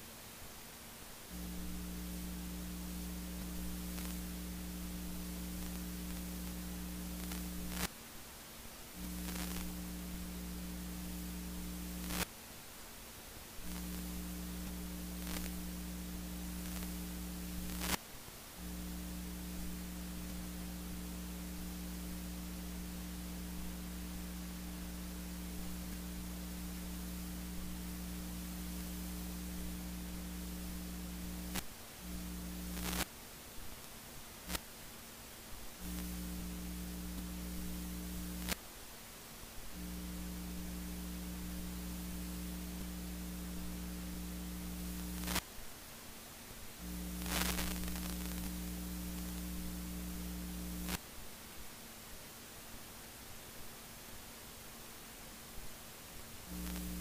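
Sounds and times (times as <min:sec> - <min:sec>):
electrical mains hum: 0:00.0 - 0:57.0
recording hiss: 0:00.0 - 0:57.0.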